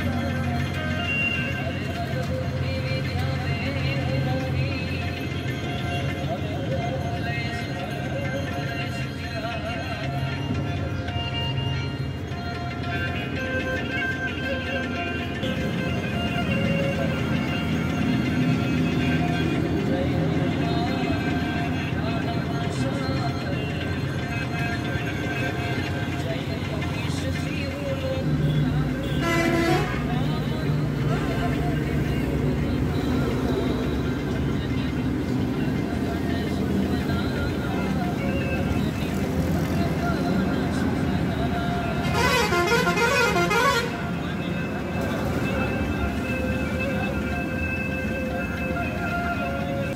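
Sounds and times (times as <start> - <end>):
music: 0.0 - 49.9
passing traffic: 0.0 - 49.9
voices: 0.0 - 49.9
vehicle horn: 29.0 - 30.1, 42.0 - 44.1.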